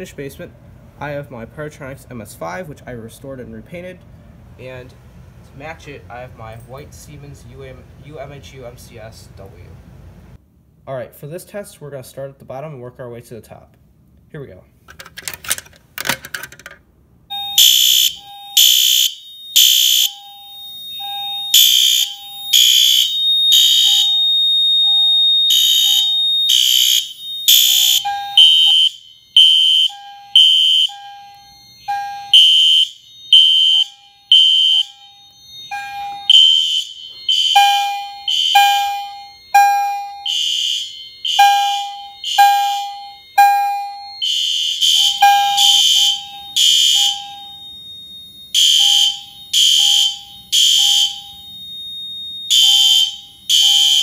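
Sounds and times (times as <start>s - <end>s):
harsh high alarm horn: 17.3s - 54.0s
lower alarm beep: 17.3s - 54.0s.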